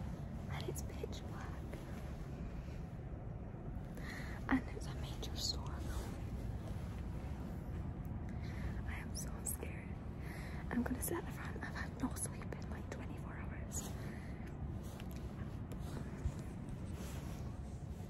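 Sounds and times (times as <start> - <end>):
woman whispering: 0.0 - 2.4, 4.0 - 6.6, 8.4 - 17.4
low hum: 0.0 - 18.0.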